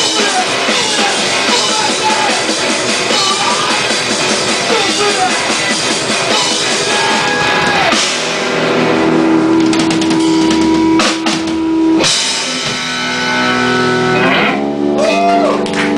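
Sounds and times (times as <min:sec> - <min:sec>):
drum and cymbal hits: 0:00.0 - 0:14.0
live rock band playing: 0:00.0 - 0:15.9
ringing guitar chords: 0:00.0 - 0:15.9.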